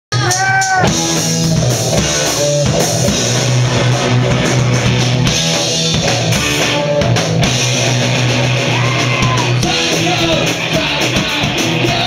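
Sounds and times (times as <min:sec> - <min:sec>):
bass guitar: 0:00.1 - 0:12.0
drum kit: 0:00.1 - 0:12.0
electric guitar: 0:00.1 - 0:12.0.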